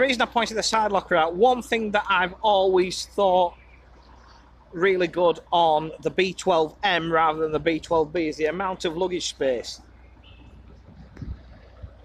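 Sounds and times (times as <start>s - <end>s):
low steady rumble: 0.0s - 12.0s
soft low thumps: 9.9s - 12.0s.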